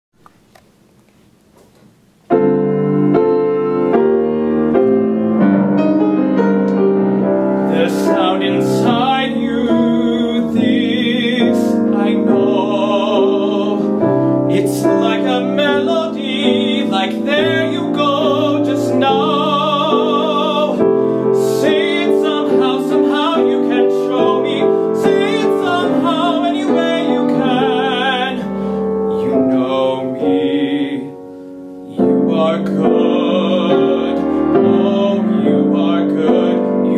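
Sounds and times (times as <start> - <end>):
piano chords: 2.2 - 36.9
man singing with vibrato: 7.6 - 36.9.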